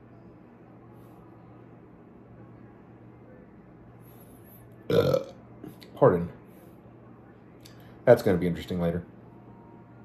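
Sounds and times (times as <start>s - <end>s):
man burping loudly: 4.9s - 5.4s.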